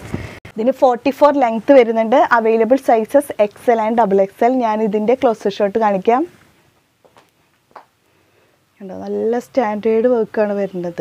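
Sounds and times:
woman talking: 0:00.5 - 0:06.4, 0:08.8 - 0:11.0.

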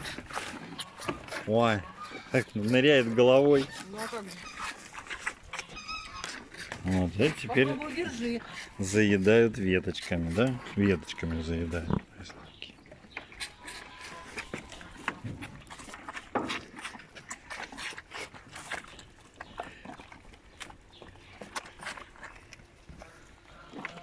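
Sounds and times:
calf sucking from bottle: 0:00.0 - 0:09.4, 0:13.3 - 0:24.0
animals chewing branches: 0:00.0 - 0:24.0.

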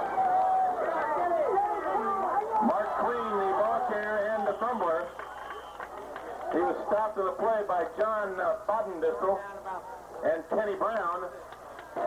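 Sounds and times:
people talking and calling out: 0:00.6 - 0:12.0.

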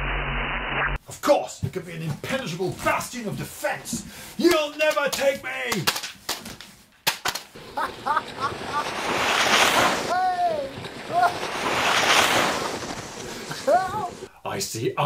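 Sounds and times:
man yelling: 0:04.4 - 0:05.9, 0:10.1 - 0:11.4, 0:13.6 - 0:14.2
rushing air whooshes: 0:08.4 - 0:14.3
man whooping: 0:10.0 - 0:11.5, 0:13.5 - 0:14.3.

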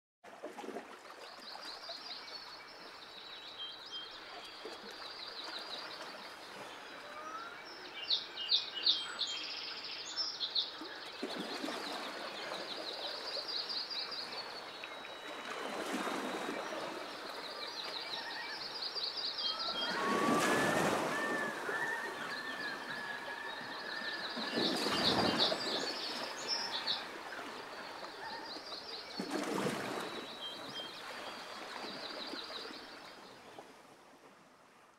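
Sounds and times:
birds trilling and chirping: 0:19.4 - 0:28.7.

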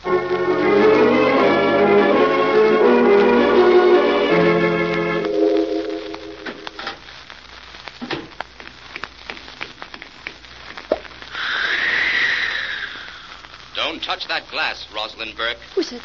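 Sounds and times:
organ music: 0:00.0 - 0:07.0.

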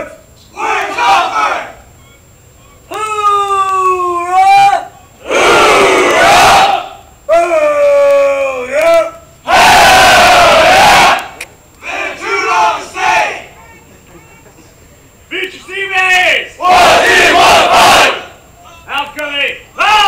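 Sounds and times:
group shouting in unison: 0:00.6 - 0:01.8, 0:02.9 - 0:07.6, 0:09.4 - 0:13.5, 0:16.6 - 0:18.4
person shouting a call: 0:00.6 - 0:05.2, 0:07.3 - 0:09.2, 0:18.6 - 0:20.0.

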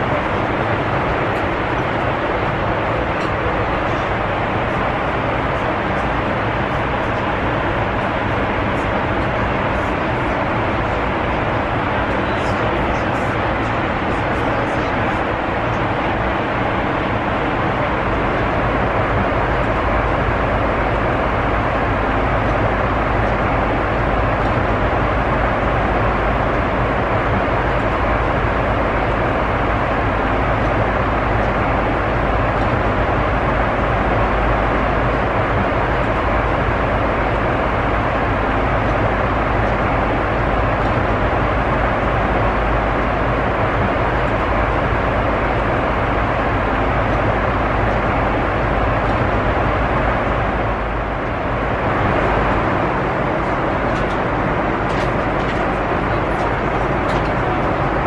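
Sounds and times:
airplane cabin noise: 0:00.0 - 0:58.0.

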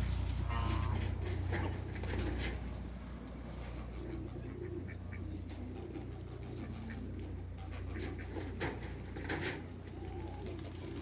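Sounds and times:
pigeons cooing: 0:00.0 - 0:11.0
steady low hum: 0:00.0 - 0:11.0.

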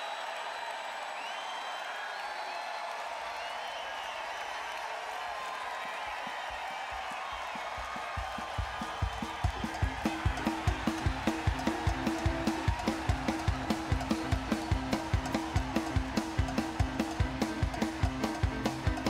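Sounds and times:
crowd cheering: 0:00.0 - 0:19.0
drum kit fast beat: 0:06.4 - 0:19.0.

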